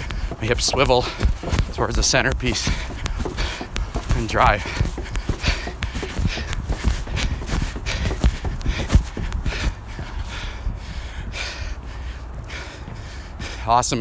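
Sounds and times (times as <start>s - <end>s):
footsteps on wooden stairs: 0.0s - 14.0s
hard breathing: 0.0s - 14.0s.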